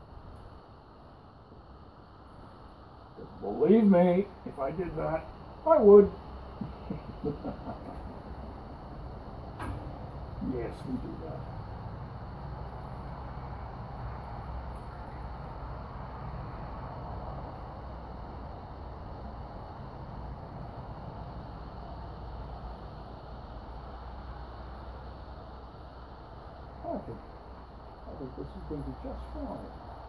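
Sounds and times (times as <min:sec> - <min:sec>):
low steady background noise: 0:00.0 - 0:30.0.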